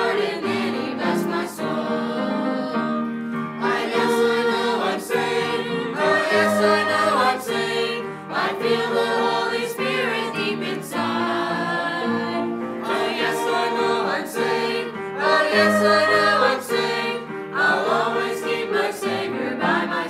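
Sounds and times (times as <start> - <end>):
church choir singing a hymn: 0.0 - 20.0.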